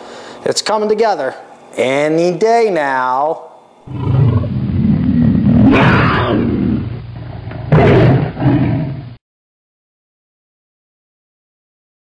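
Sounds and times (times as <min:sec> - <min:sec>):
growling roar: 0:03.9 - 0:09.2.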